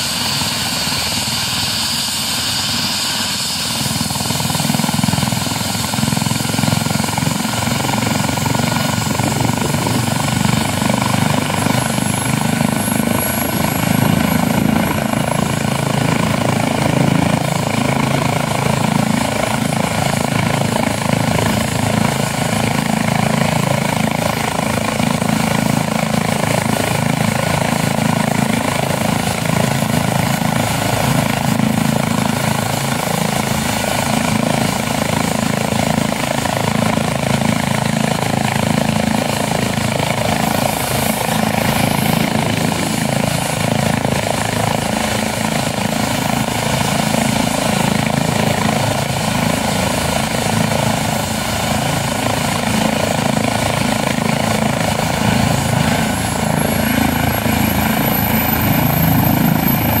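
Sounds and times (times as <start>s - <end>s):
helicopter turbine and rotor noise: 0.0s - 60.0s.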